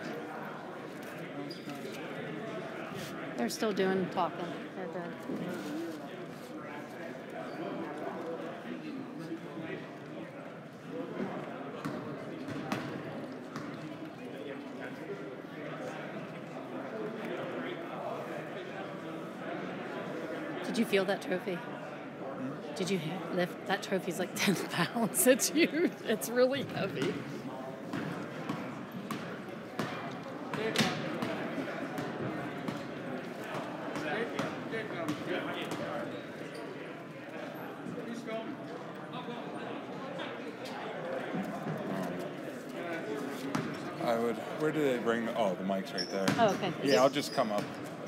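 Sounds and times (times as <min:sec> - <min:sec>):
indistinct chatter in echoing hall: 0:00.0 - 0:48.0
murmur of voices: 0:00.0 - 0:48.0.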